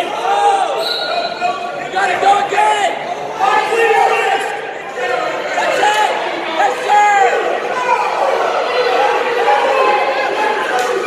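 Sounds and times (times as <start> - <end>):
people shouting in echoing gym: 0.0 - 11.0.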